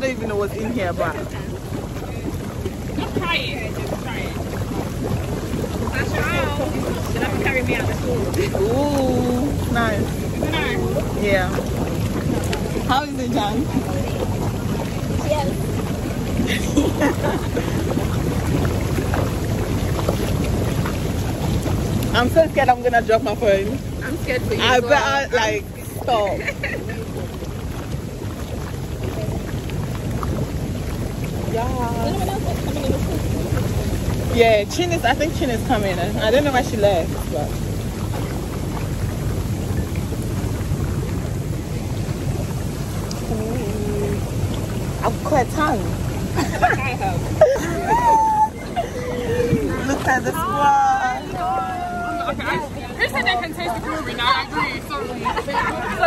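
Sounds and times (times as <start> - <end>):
hot tub jets bubbling: 0.0 - 56.0.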